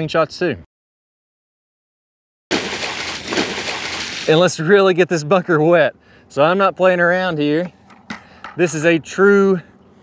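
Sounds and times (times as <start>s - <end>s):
water splashing onto sand: 2.5s - 4.5s.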